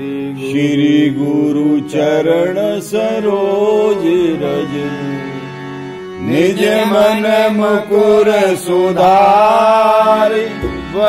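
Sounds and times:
keyboard drone: 0.0s - 11.0s
person chanting: 0.0s - 11.0s.

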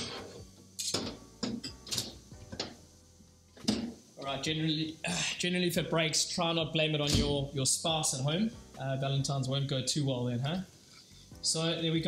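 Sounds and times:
glassware knocking and clinking: 0.8s - 2.8s.

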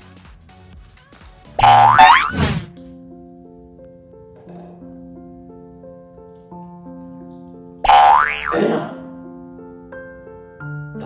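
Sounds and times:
soft background music: 0.0s - 11.0s
cartoon sliding pitch effect: 1.6s - 2.7s, 7.9s - 8.6s.

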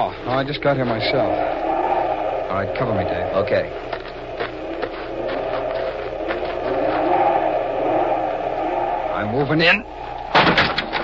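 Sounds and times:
wind whining: 0.6s - 11.0s.

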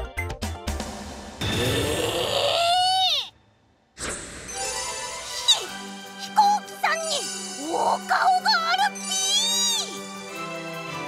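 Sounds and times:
high character voice exclaiming: 2.6s - 3.3s, 5.4s - 10.0s.

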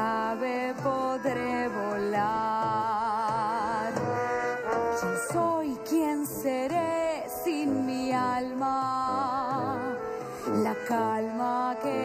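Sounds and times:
person singing: 0.0s - 12.0s
clarinet and trombone playing: 9.0s - 12.0s.

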